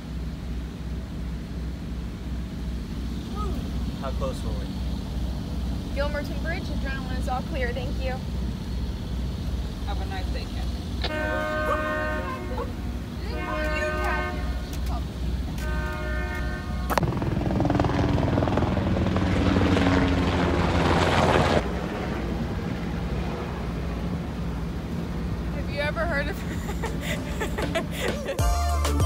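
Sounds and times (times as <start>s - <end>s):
low engine hum: 0.0s - 29.0s
long horn blasts: 11.0s - 17.1s
helicopter rotor noise: 16.4s - 28.4s.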